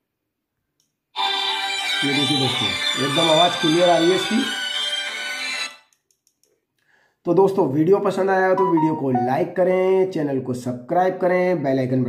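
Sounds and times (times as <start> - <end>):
music from phone loudspeaker: 1.2 - 4.5, 8.6 - 9.4.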